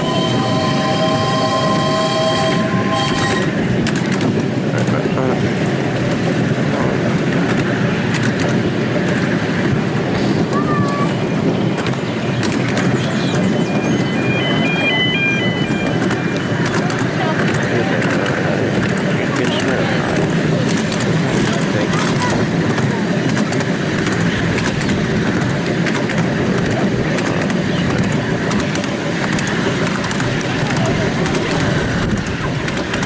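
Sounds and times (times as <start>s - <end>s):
steam locomotive whistle: 0.0s - 3.6s
train running along track: 0.0s - 33.0s.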